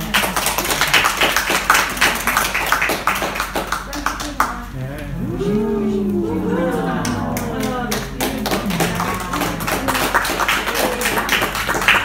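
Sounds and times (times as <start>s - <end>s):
audience clapping: 0.0s - 12.0s
voices calling out: 4.6s - 12.0s.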